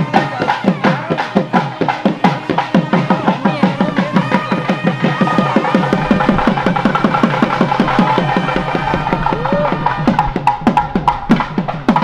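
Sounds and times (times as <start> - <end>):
drums in a fast beat: 0.0 - 12.0
reed pipe steady tones: 0.0 - 12.0.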